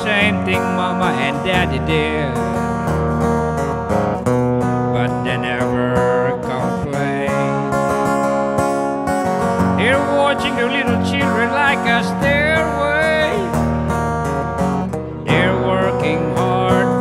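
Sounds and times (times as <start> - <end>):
man singing: 0.0 - 2.8, 4.9 - 8.3, 9.7 - 13.9, 15.2 - 17.0
acoustic guitar strumming: 0.0 - 17.0.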